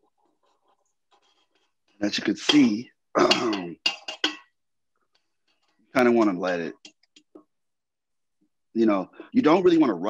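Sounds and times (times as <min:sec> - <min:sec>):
man speaking: 0:02.0 - 0:03.8, 0:06.0 - 0:06.8, 0:08.8 - 0:10.0.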